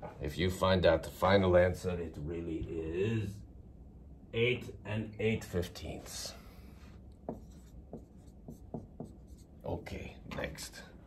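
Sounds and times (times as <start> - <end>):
marker writing on whiteboard: 6.8 - 10.0.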